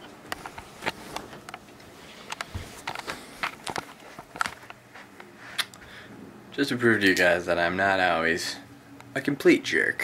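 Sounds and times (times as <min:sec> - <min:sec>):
footsteps: 0:00.4 - 0:05.7.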